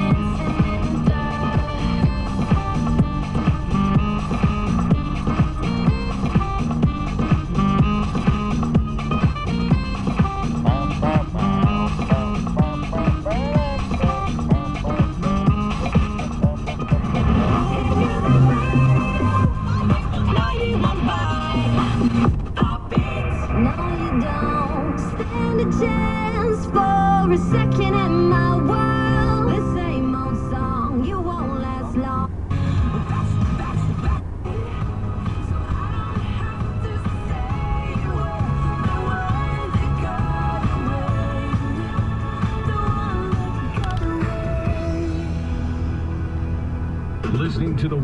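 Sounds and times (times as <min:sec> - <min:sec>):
music from car radio: 0:00.0 - 0:48.0.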